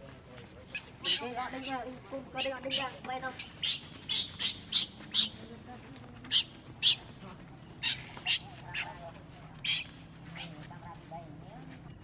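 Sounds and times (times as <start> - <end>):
high-pitched animal chirps: 2.4 - 5.4, 6.3 - 7.1, 7.8 - 8.9, 9.6 - 10.5.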